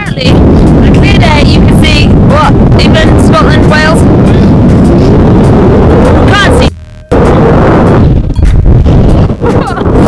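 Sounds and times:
strong wind buffeting microphone: 0.0 - 10.0.

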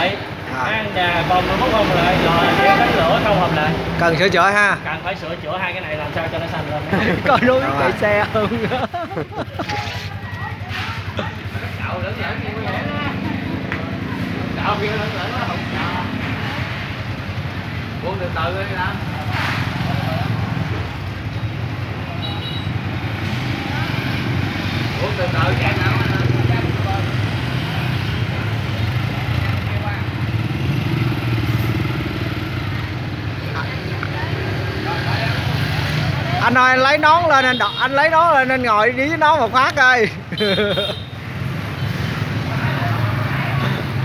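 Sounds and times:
motorbikes passing: 0.0 - 44.0.

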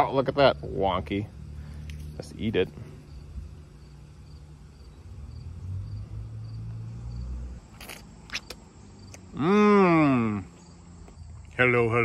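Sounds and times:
cricket chirping: 0.0 - 12.0.

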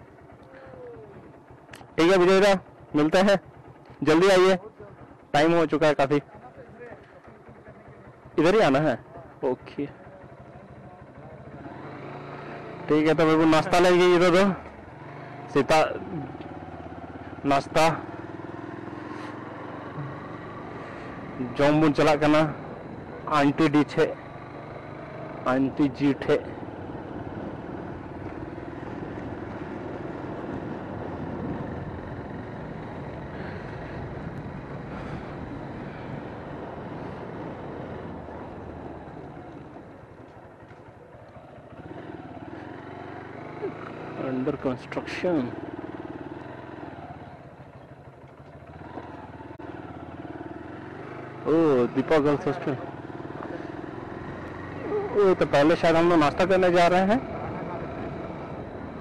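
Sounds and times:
motorcycle engine running: 0.0 - 59.0
road and wind noise: 0.0 - 59.0.

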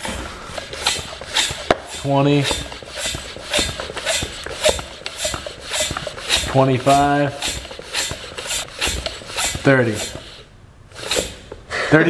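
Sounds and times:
hand pump rasping strokes: 0.0 - 11.8.

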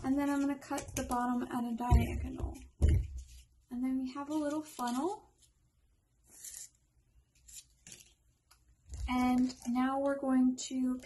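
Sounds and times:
paper funnel rustling: 4.1 - 5.5, 8.8 - 10.3.

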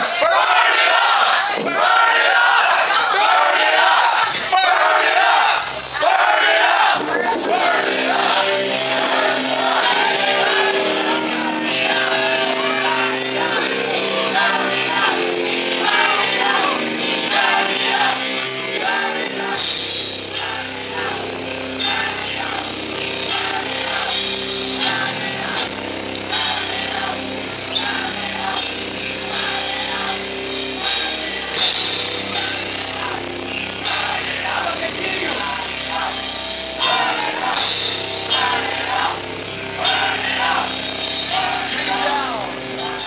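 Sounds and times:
heavy metal band playing: 0.0 - 43.0
crash cymbals struck: 19.6 - 43.0.

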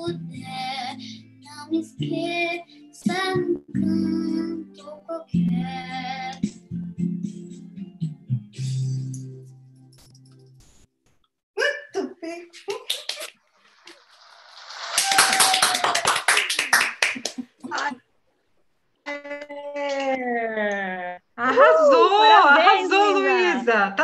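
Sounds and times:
clapping and cheering: 14.8 - 18.0
voices over video call: 19.0 - 24.0.

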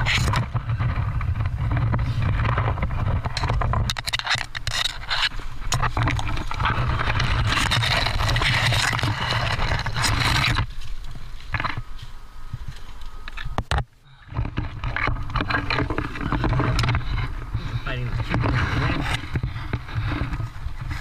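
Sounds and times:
branches scraping against camera: 0.0 - 21.0.

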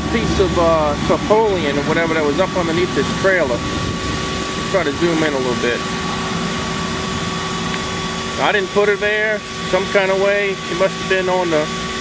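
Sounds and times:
high whine: 0.0 - 12.0
machine hum: 0.0 - 12.0.

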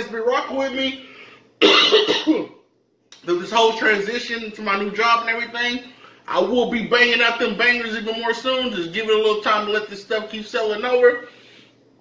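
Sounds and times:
man coughing and clearing throat: 1.6 - 2.7.

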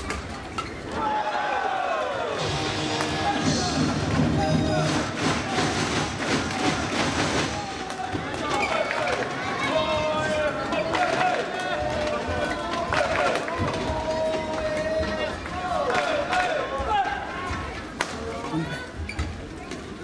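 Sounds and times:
crowd voices and cheering: 0.0 - 20.0
shoe squeaks: 19.0 - 19.4.

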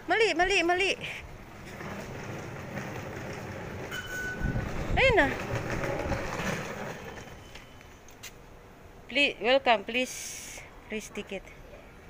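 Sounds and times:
metro train rumbling: 1.3 - 8.0
fare gate beep: 3.9 - 4.6, 7.1 - 8.0.

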